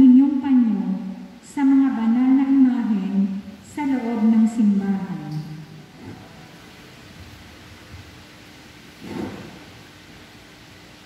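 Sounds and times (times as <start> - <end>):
woman's voice: 0.0 - 5.5
faint steady hum: 0.0 - 11.0.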